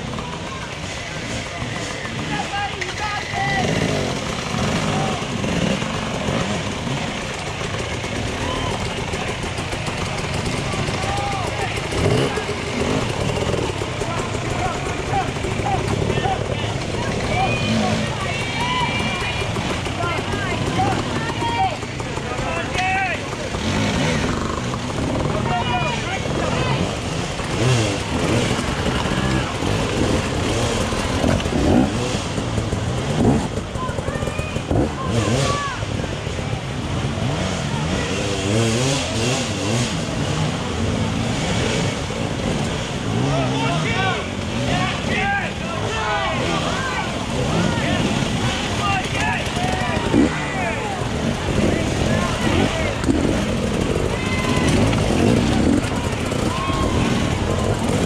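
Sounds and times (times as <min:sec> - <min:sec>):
dirt bike engines revving: 0:00.0 - 0:58.0
spectators' voices and shouts: 0:00.0 - 0:58.0.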